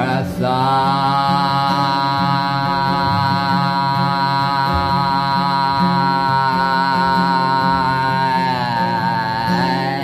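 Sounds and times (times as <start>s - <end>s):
acoustic guitar: 0.0s - 10.0s
man singing a long note: 0.0s - 10.0s.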